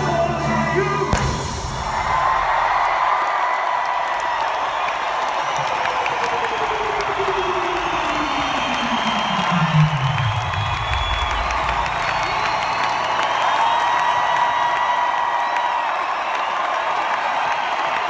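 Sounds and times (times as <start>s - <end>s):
crowd cheering and screaming: 0.0s - 18.0s
whistles: 4.6s - 14.7s
low tone sliding down in pitch: 6.1s - 12.6s.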